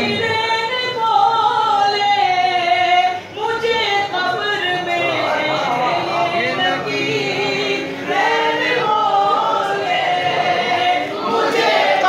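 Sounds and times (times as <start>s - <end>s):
men chanting devotional song: 4.6s - 12.0s.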